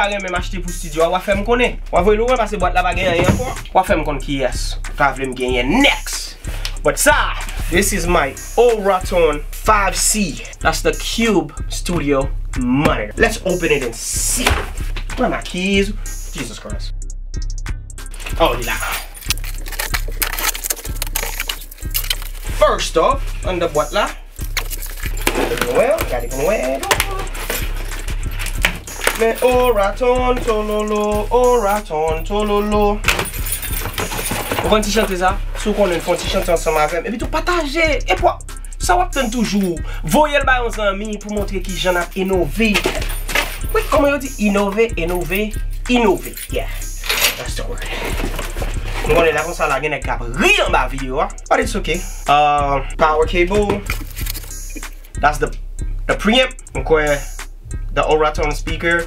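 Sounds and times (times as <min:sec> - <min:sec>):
cardboard packaging rustling: 0:18.2 - 0:22.6, 0:24.4 - 0:29.8, 0:33.0 - 0:36.8, 0:47.2 - 0:49.6, 0:53.8 - 0:54.6
scraping and tapping: 0:18.9 - 0:22.6, 0:47.0 - 0:49.3.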